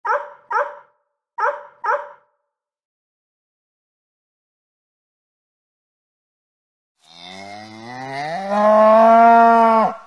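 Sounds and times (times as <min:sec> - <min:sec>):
dog barking: 0:00.0 - 0:02.3.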